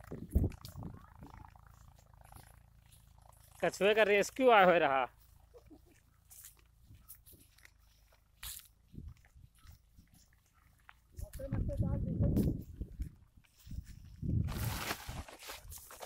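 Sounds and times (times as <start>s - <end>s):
low rumble on microphone: 0.0s - 3.6s, 11.2s - 14.8s
steps through dry grass: 0.0s - 16.0s
person laughing: 5.4s - 6.0s.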